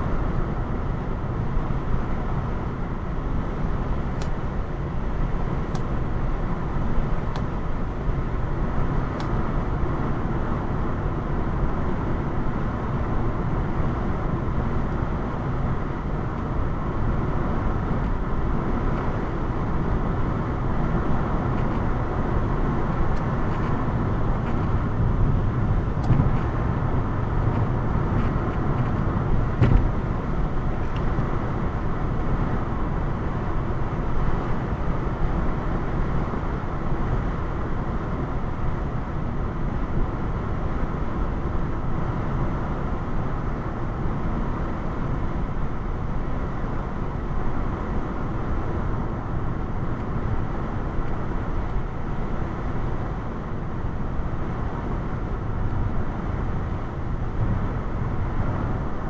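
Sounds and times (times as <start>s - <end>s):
car engine drone: 0.0s - 59.0s
tyres on highway: 0.0s - 59.0s.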